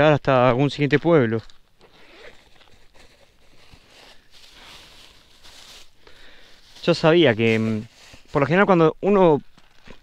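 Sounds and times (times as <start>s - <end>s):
rustling and handling noises: 0.8s - 10.0s
small ticks and scrapes: 1.4s - 5.8s.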